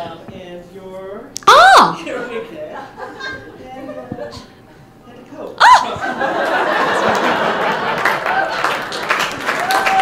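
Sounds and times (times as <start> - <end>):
person whooping: 1.4 - 2.0, 5.6 - 6.0, 9.6 - 10.0
audience laughing: 5.8 - 9.3.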